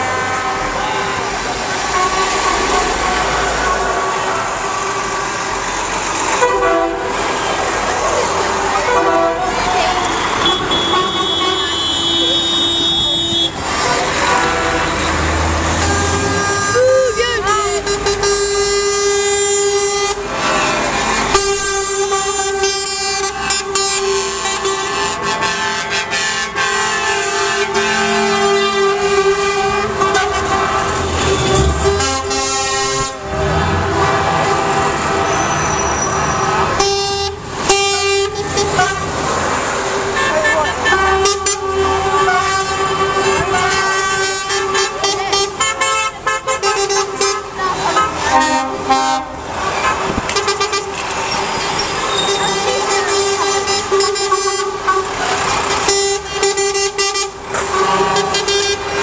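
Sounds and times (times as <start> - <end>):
diesel engines running: 0.0 - 59.0
lorry air horns: 6.2 - 7.5, 8.8 - 39.1, 40.1 - 49.4, 52.3 - 59.0.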